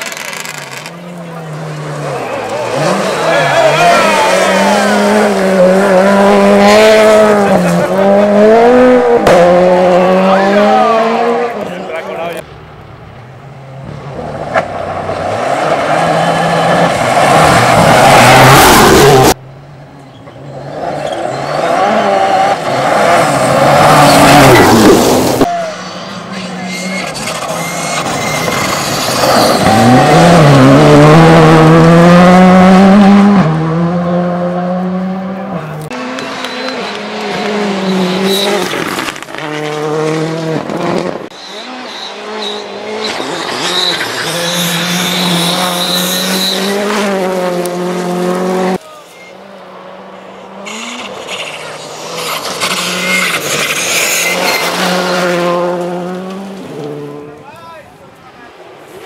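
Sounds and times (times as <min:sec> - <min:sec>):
rally car engines revving: 0:00.0 - 0:19.4, 0:20.0 - 0:57.5.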